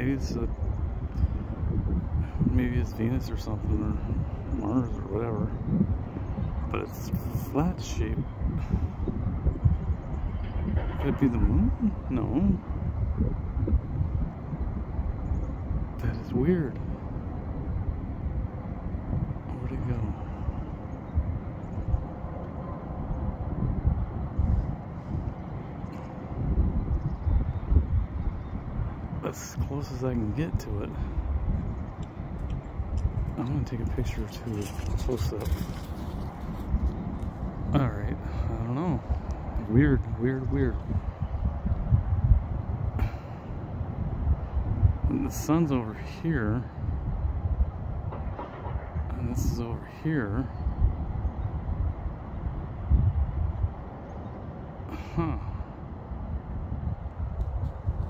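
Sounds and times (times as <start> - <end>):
microphone rumbling noise: 0.0 - 17.0
wind buffeting microphone: 0.0 - 58.0.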